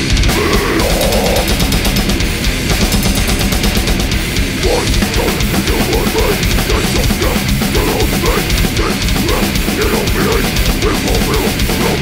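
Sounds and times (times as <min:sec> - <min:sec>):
distorted electric guitars: 0:00.0 - 0:12.0
fast dense drumming: 0:00.0 - 0:12.0
high bending guitar line: 0:00.0 - 0:12.0.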